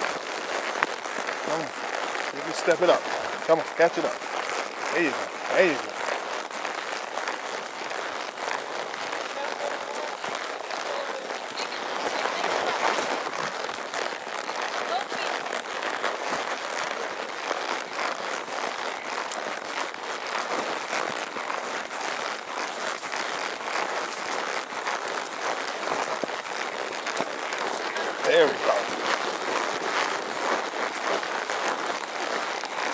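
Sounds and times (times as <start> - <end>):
brush and pine branches rustling: 0.0 - 32.9.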